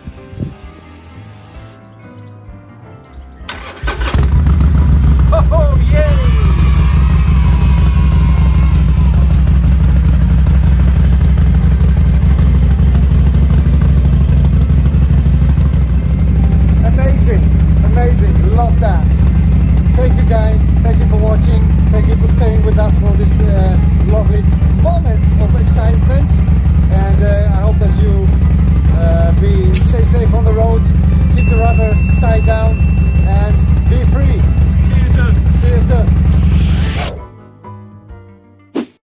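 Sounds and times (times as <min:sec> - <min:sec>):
motorcycle engine idling: 0:03.5 - 0:36.9
men talking: 0:05.3 - 0:06.6, 0:16.7 - 0:36.3.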